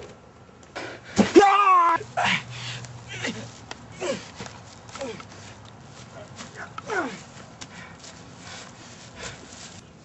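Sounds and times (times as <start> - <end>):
person yelling: 1.2 - 2.4.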